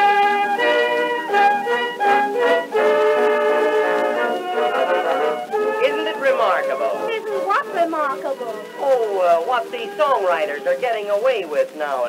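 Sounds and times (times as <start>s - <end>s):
small orchestra playing: 0.0s - 10.9s
man speaking: 4.6s - 5.4s.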